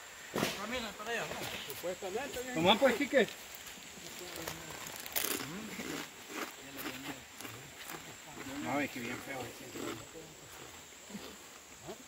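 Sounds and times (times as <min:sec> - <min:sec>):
men's indistinct voices: 0:00.3 - 0:12.0.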